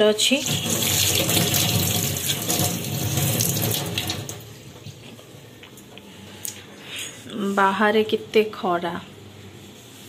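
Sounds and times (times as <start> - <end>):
tap water splashing into sink: 0.4 - 4.5.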